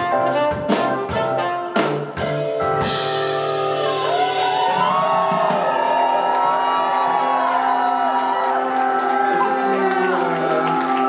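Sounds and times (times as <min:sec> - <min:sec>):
live band sustained chords: 0:00.0 - 0:11.0
crowd whooping and shouting: 0:03.6 - 0:11.0.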